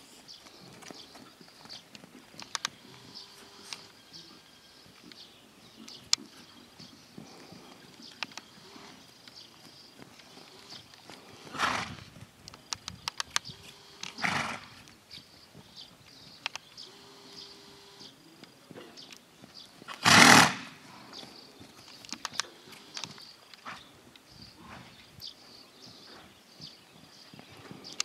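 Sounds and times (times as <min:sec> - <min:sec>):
light clicks and hoof steps: 0:00.0 - 0:28.0
horse snorting through nostrils: 0:10.4 - 0:12.1, 0:14.1 - 0:14.8, 0:19.9 - 0:20.8.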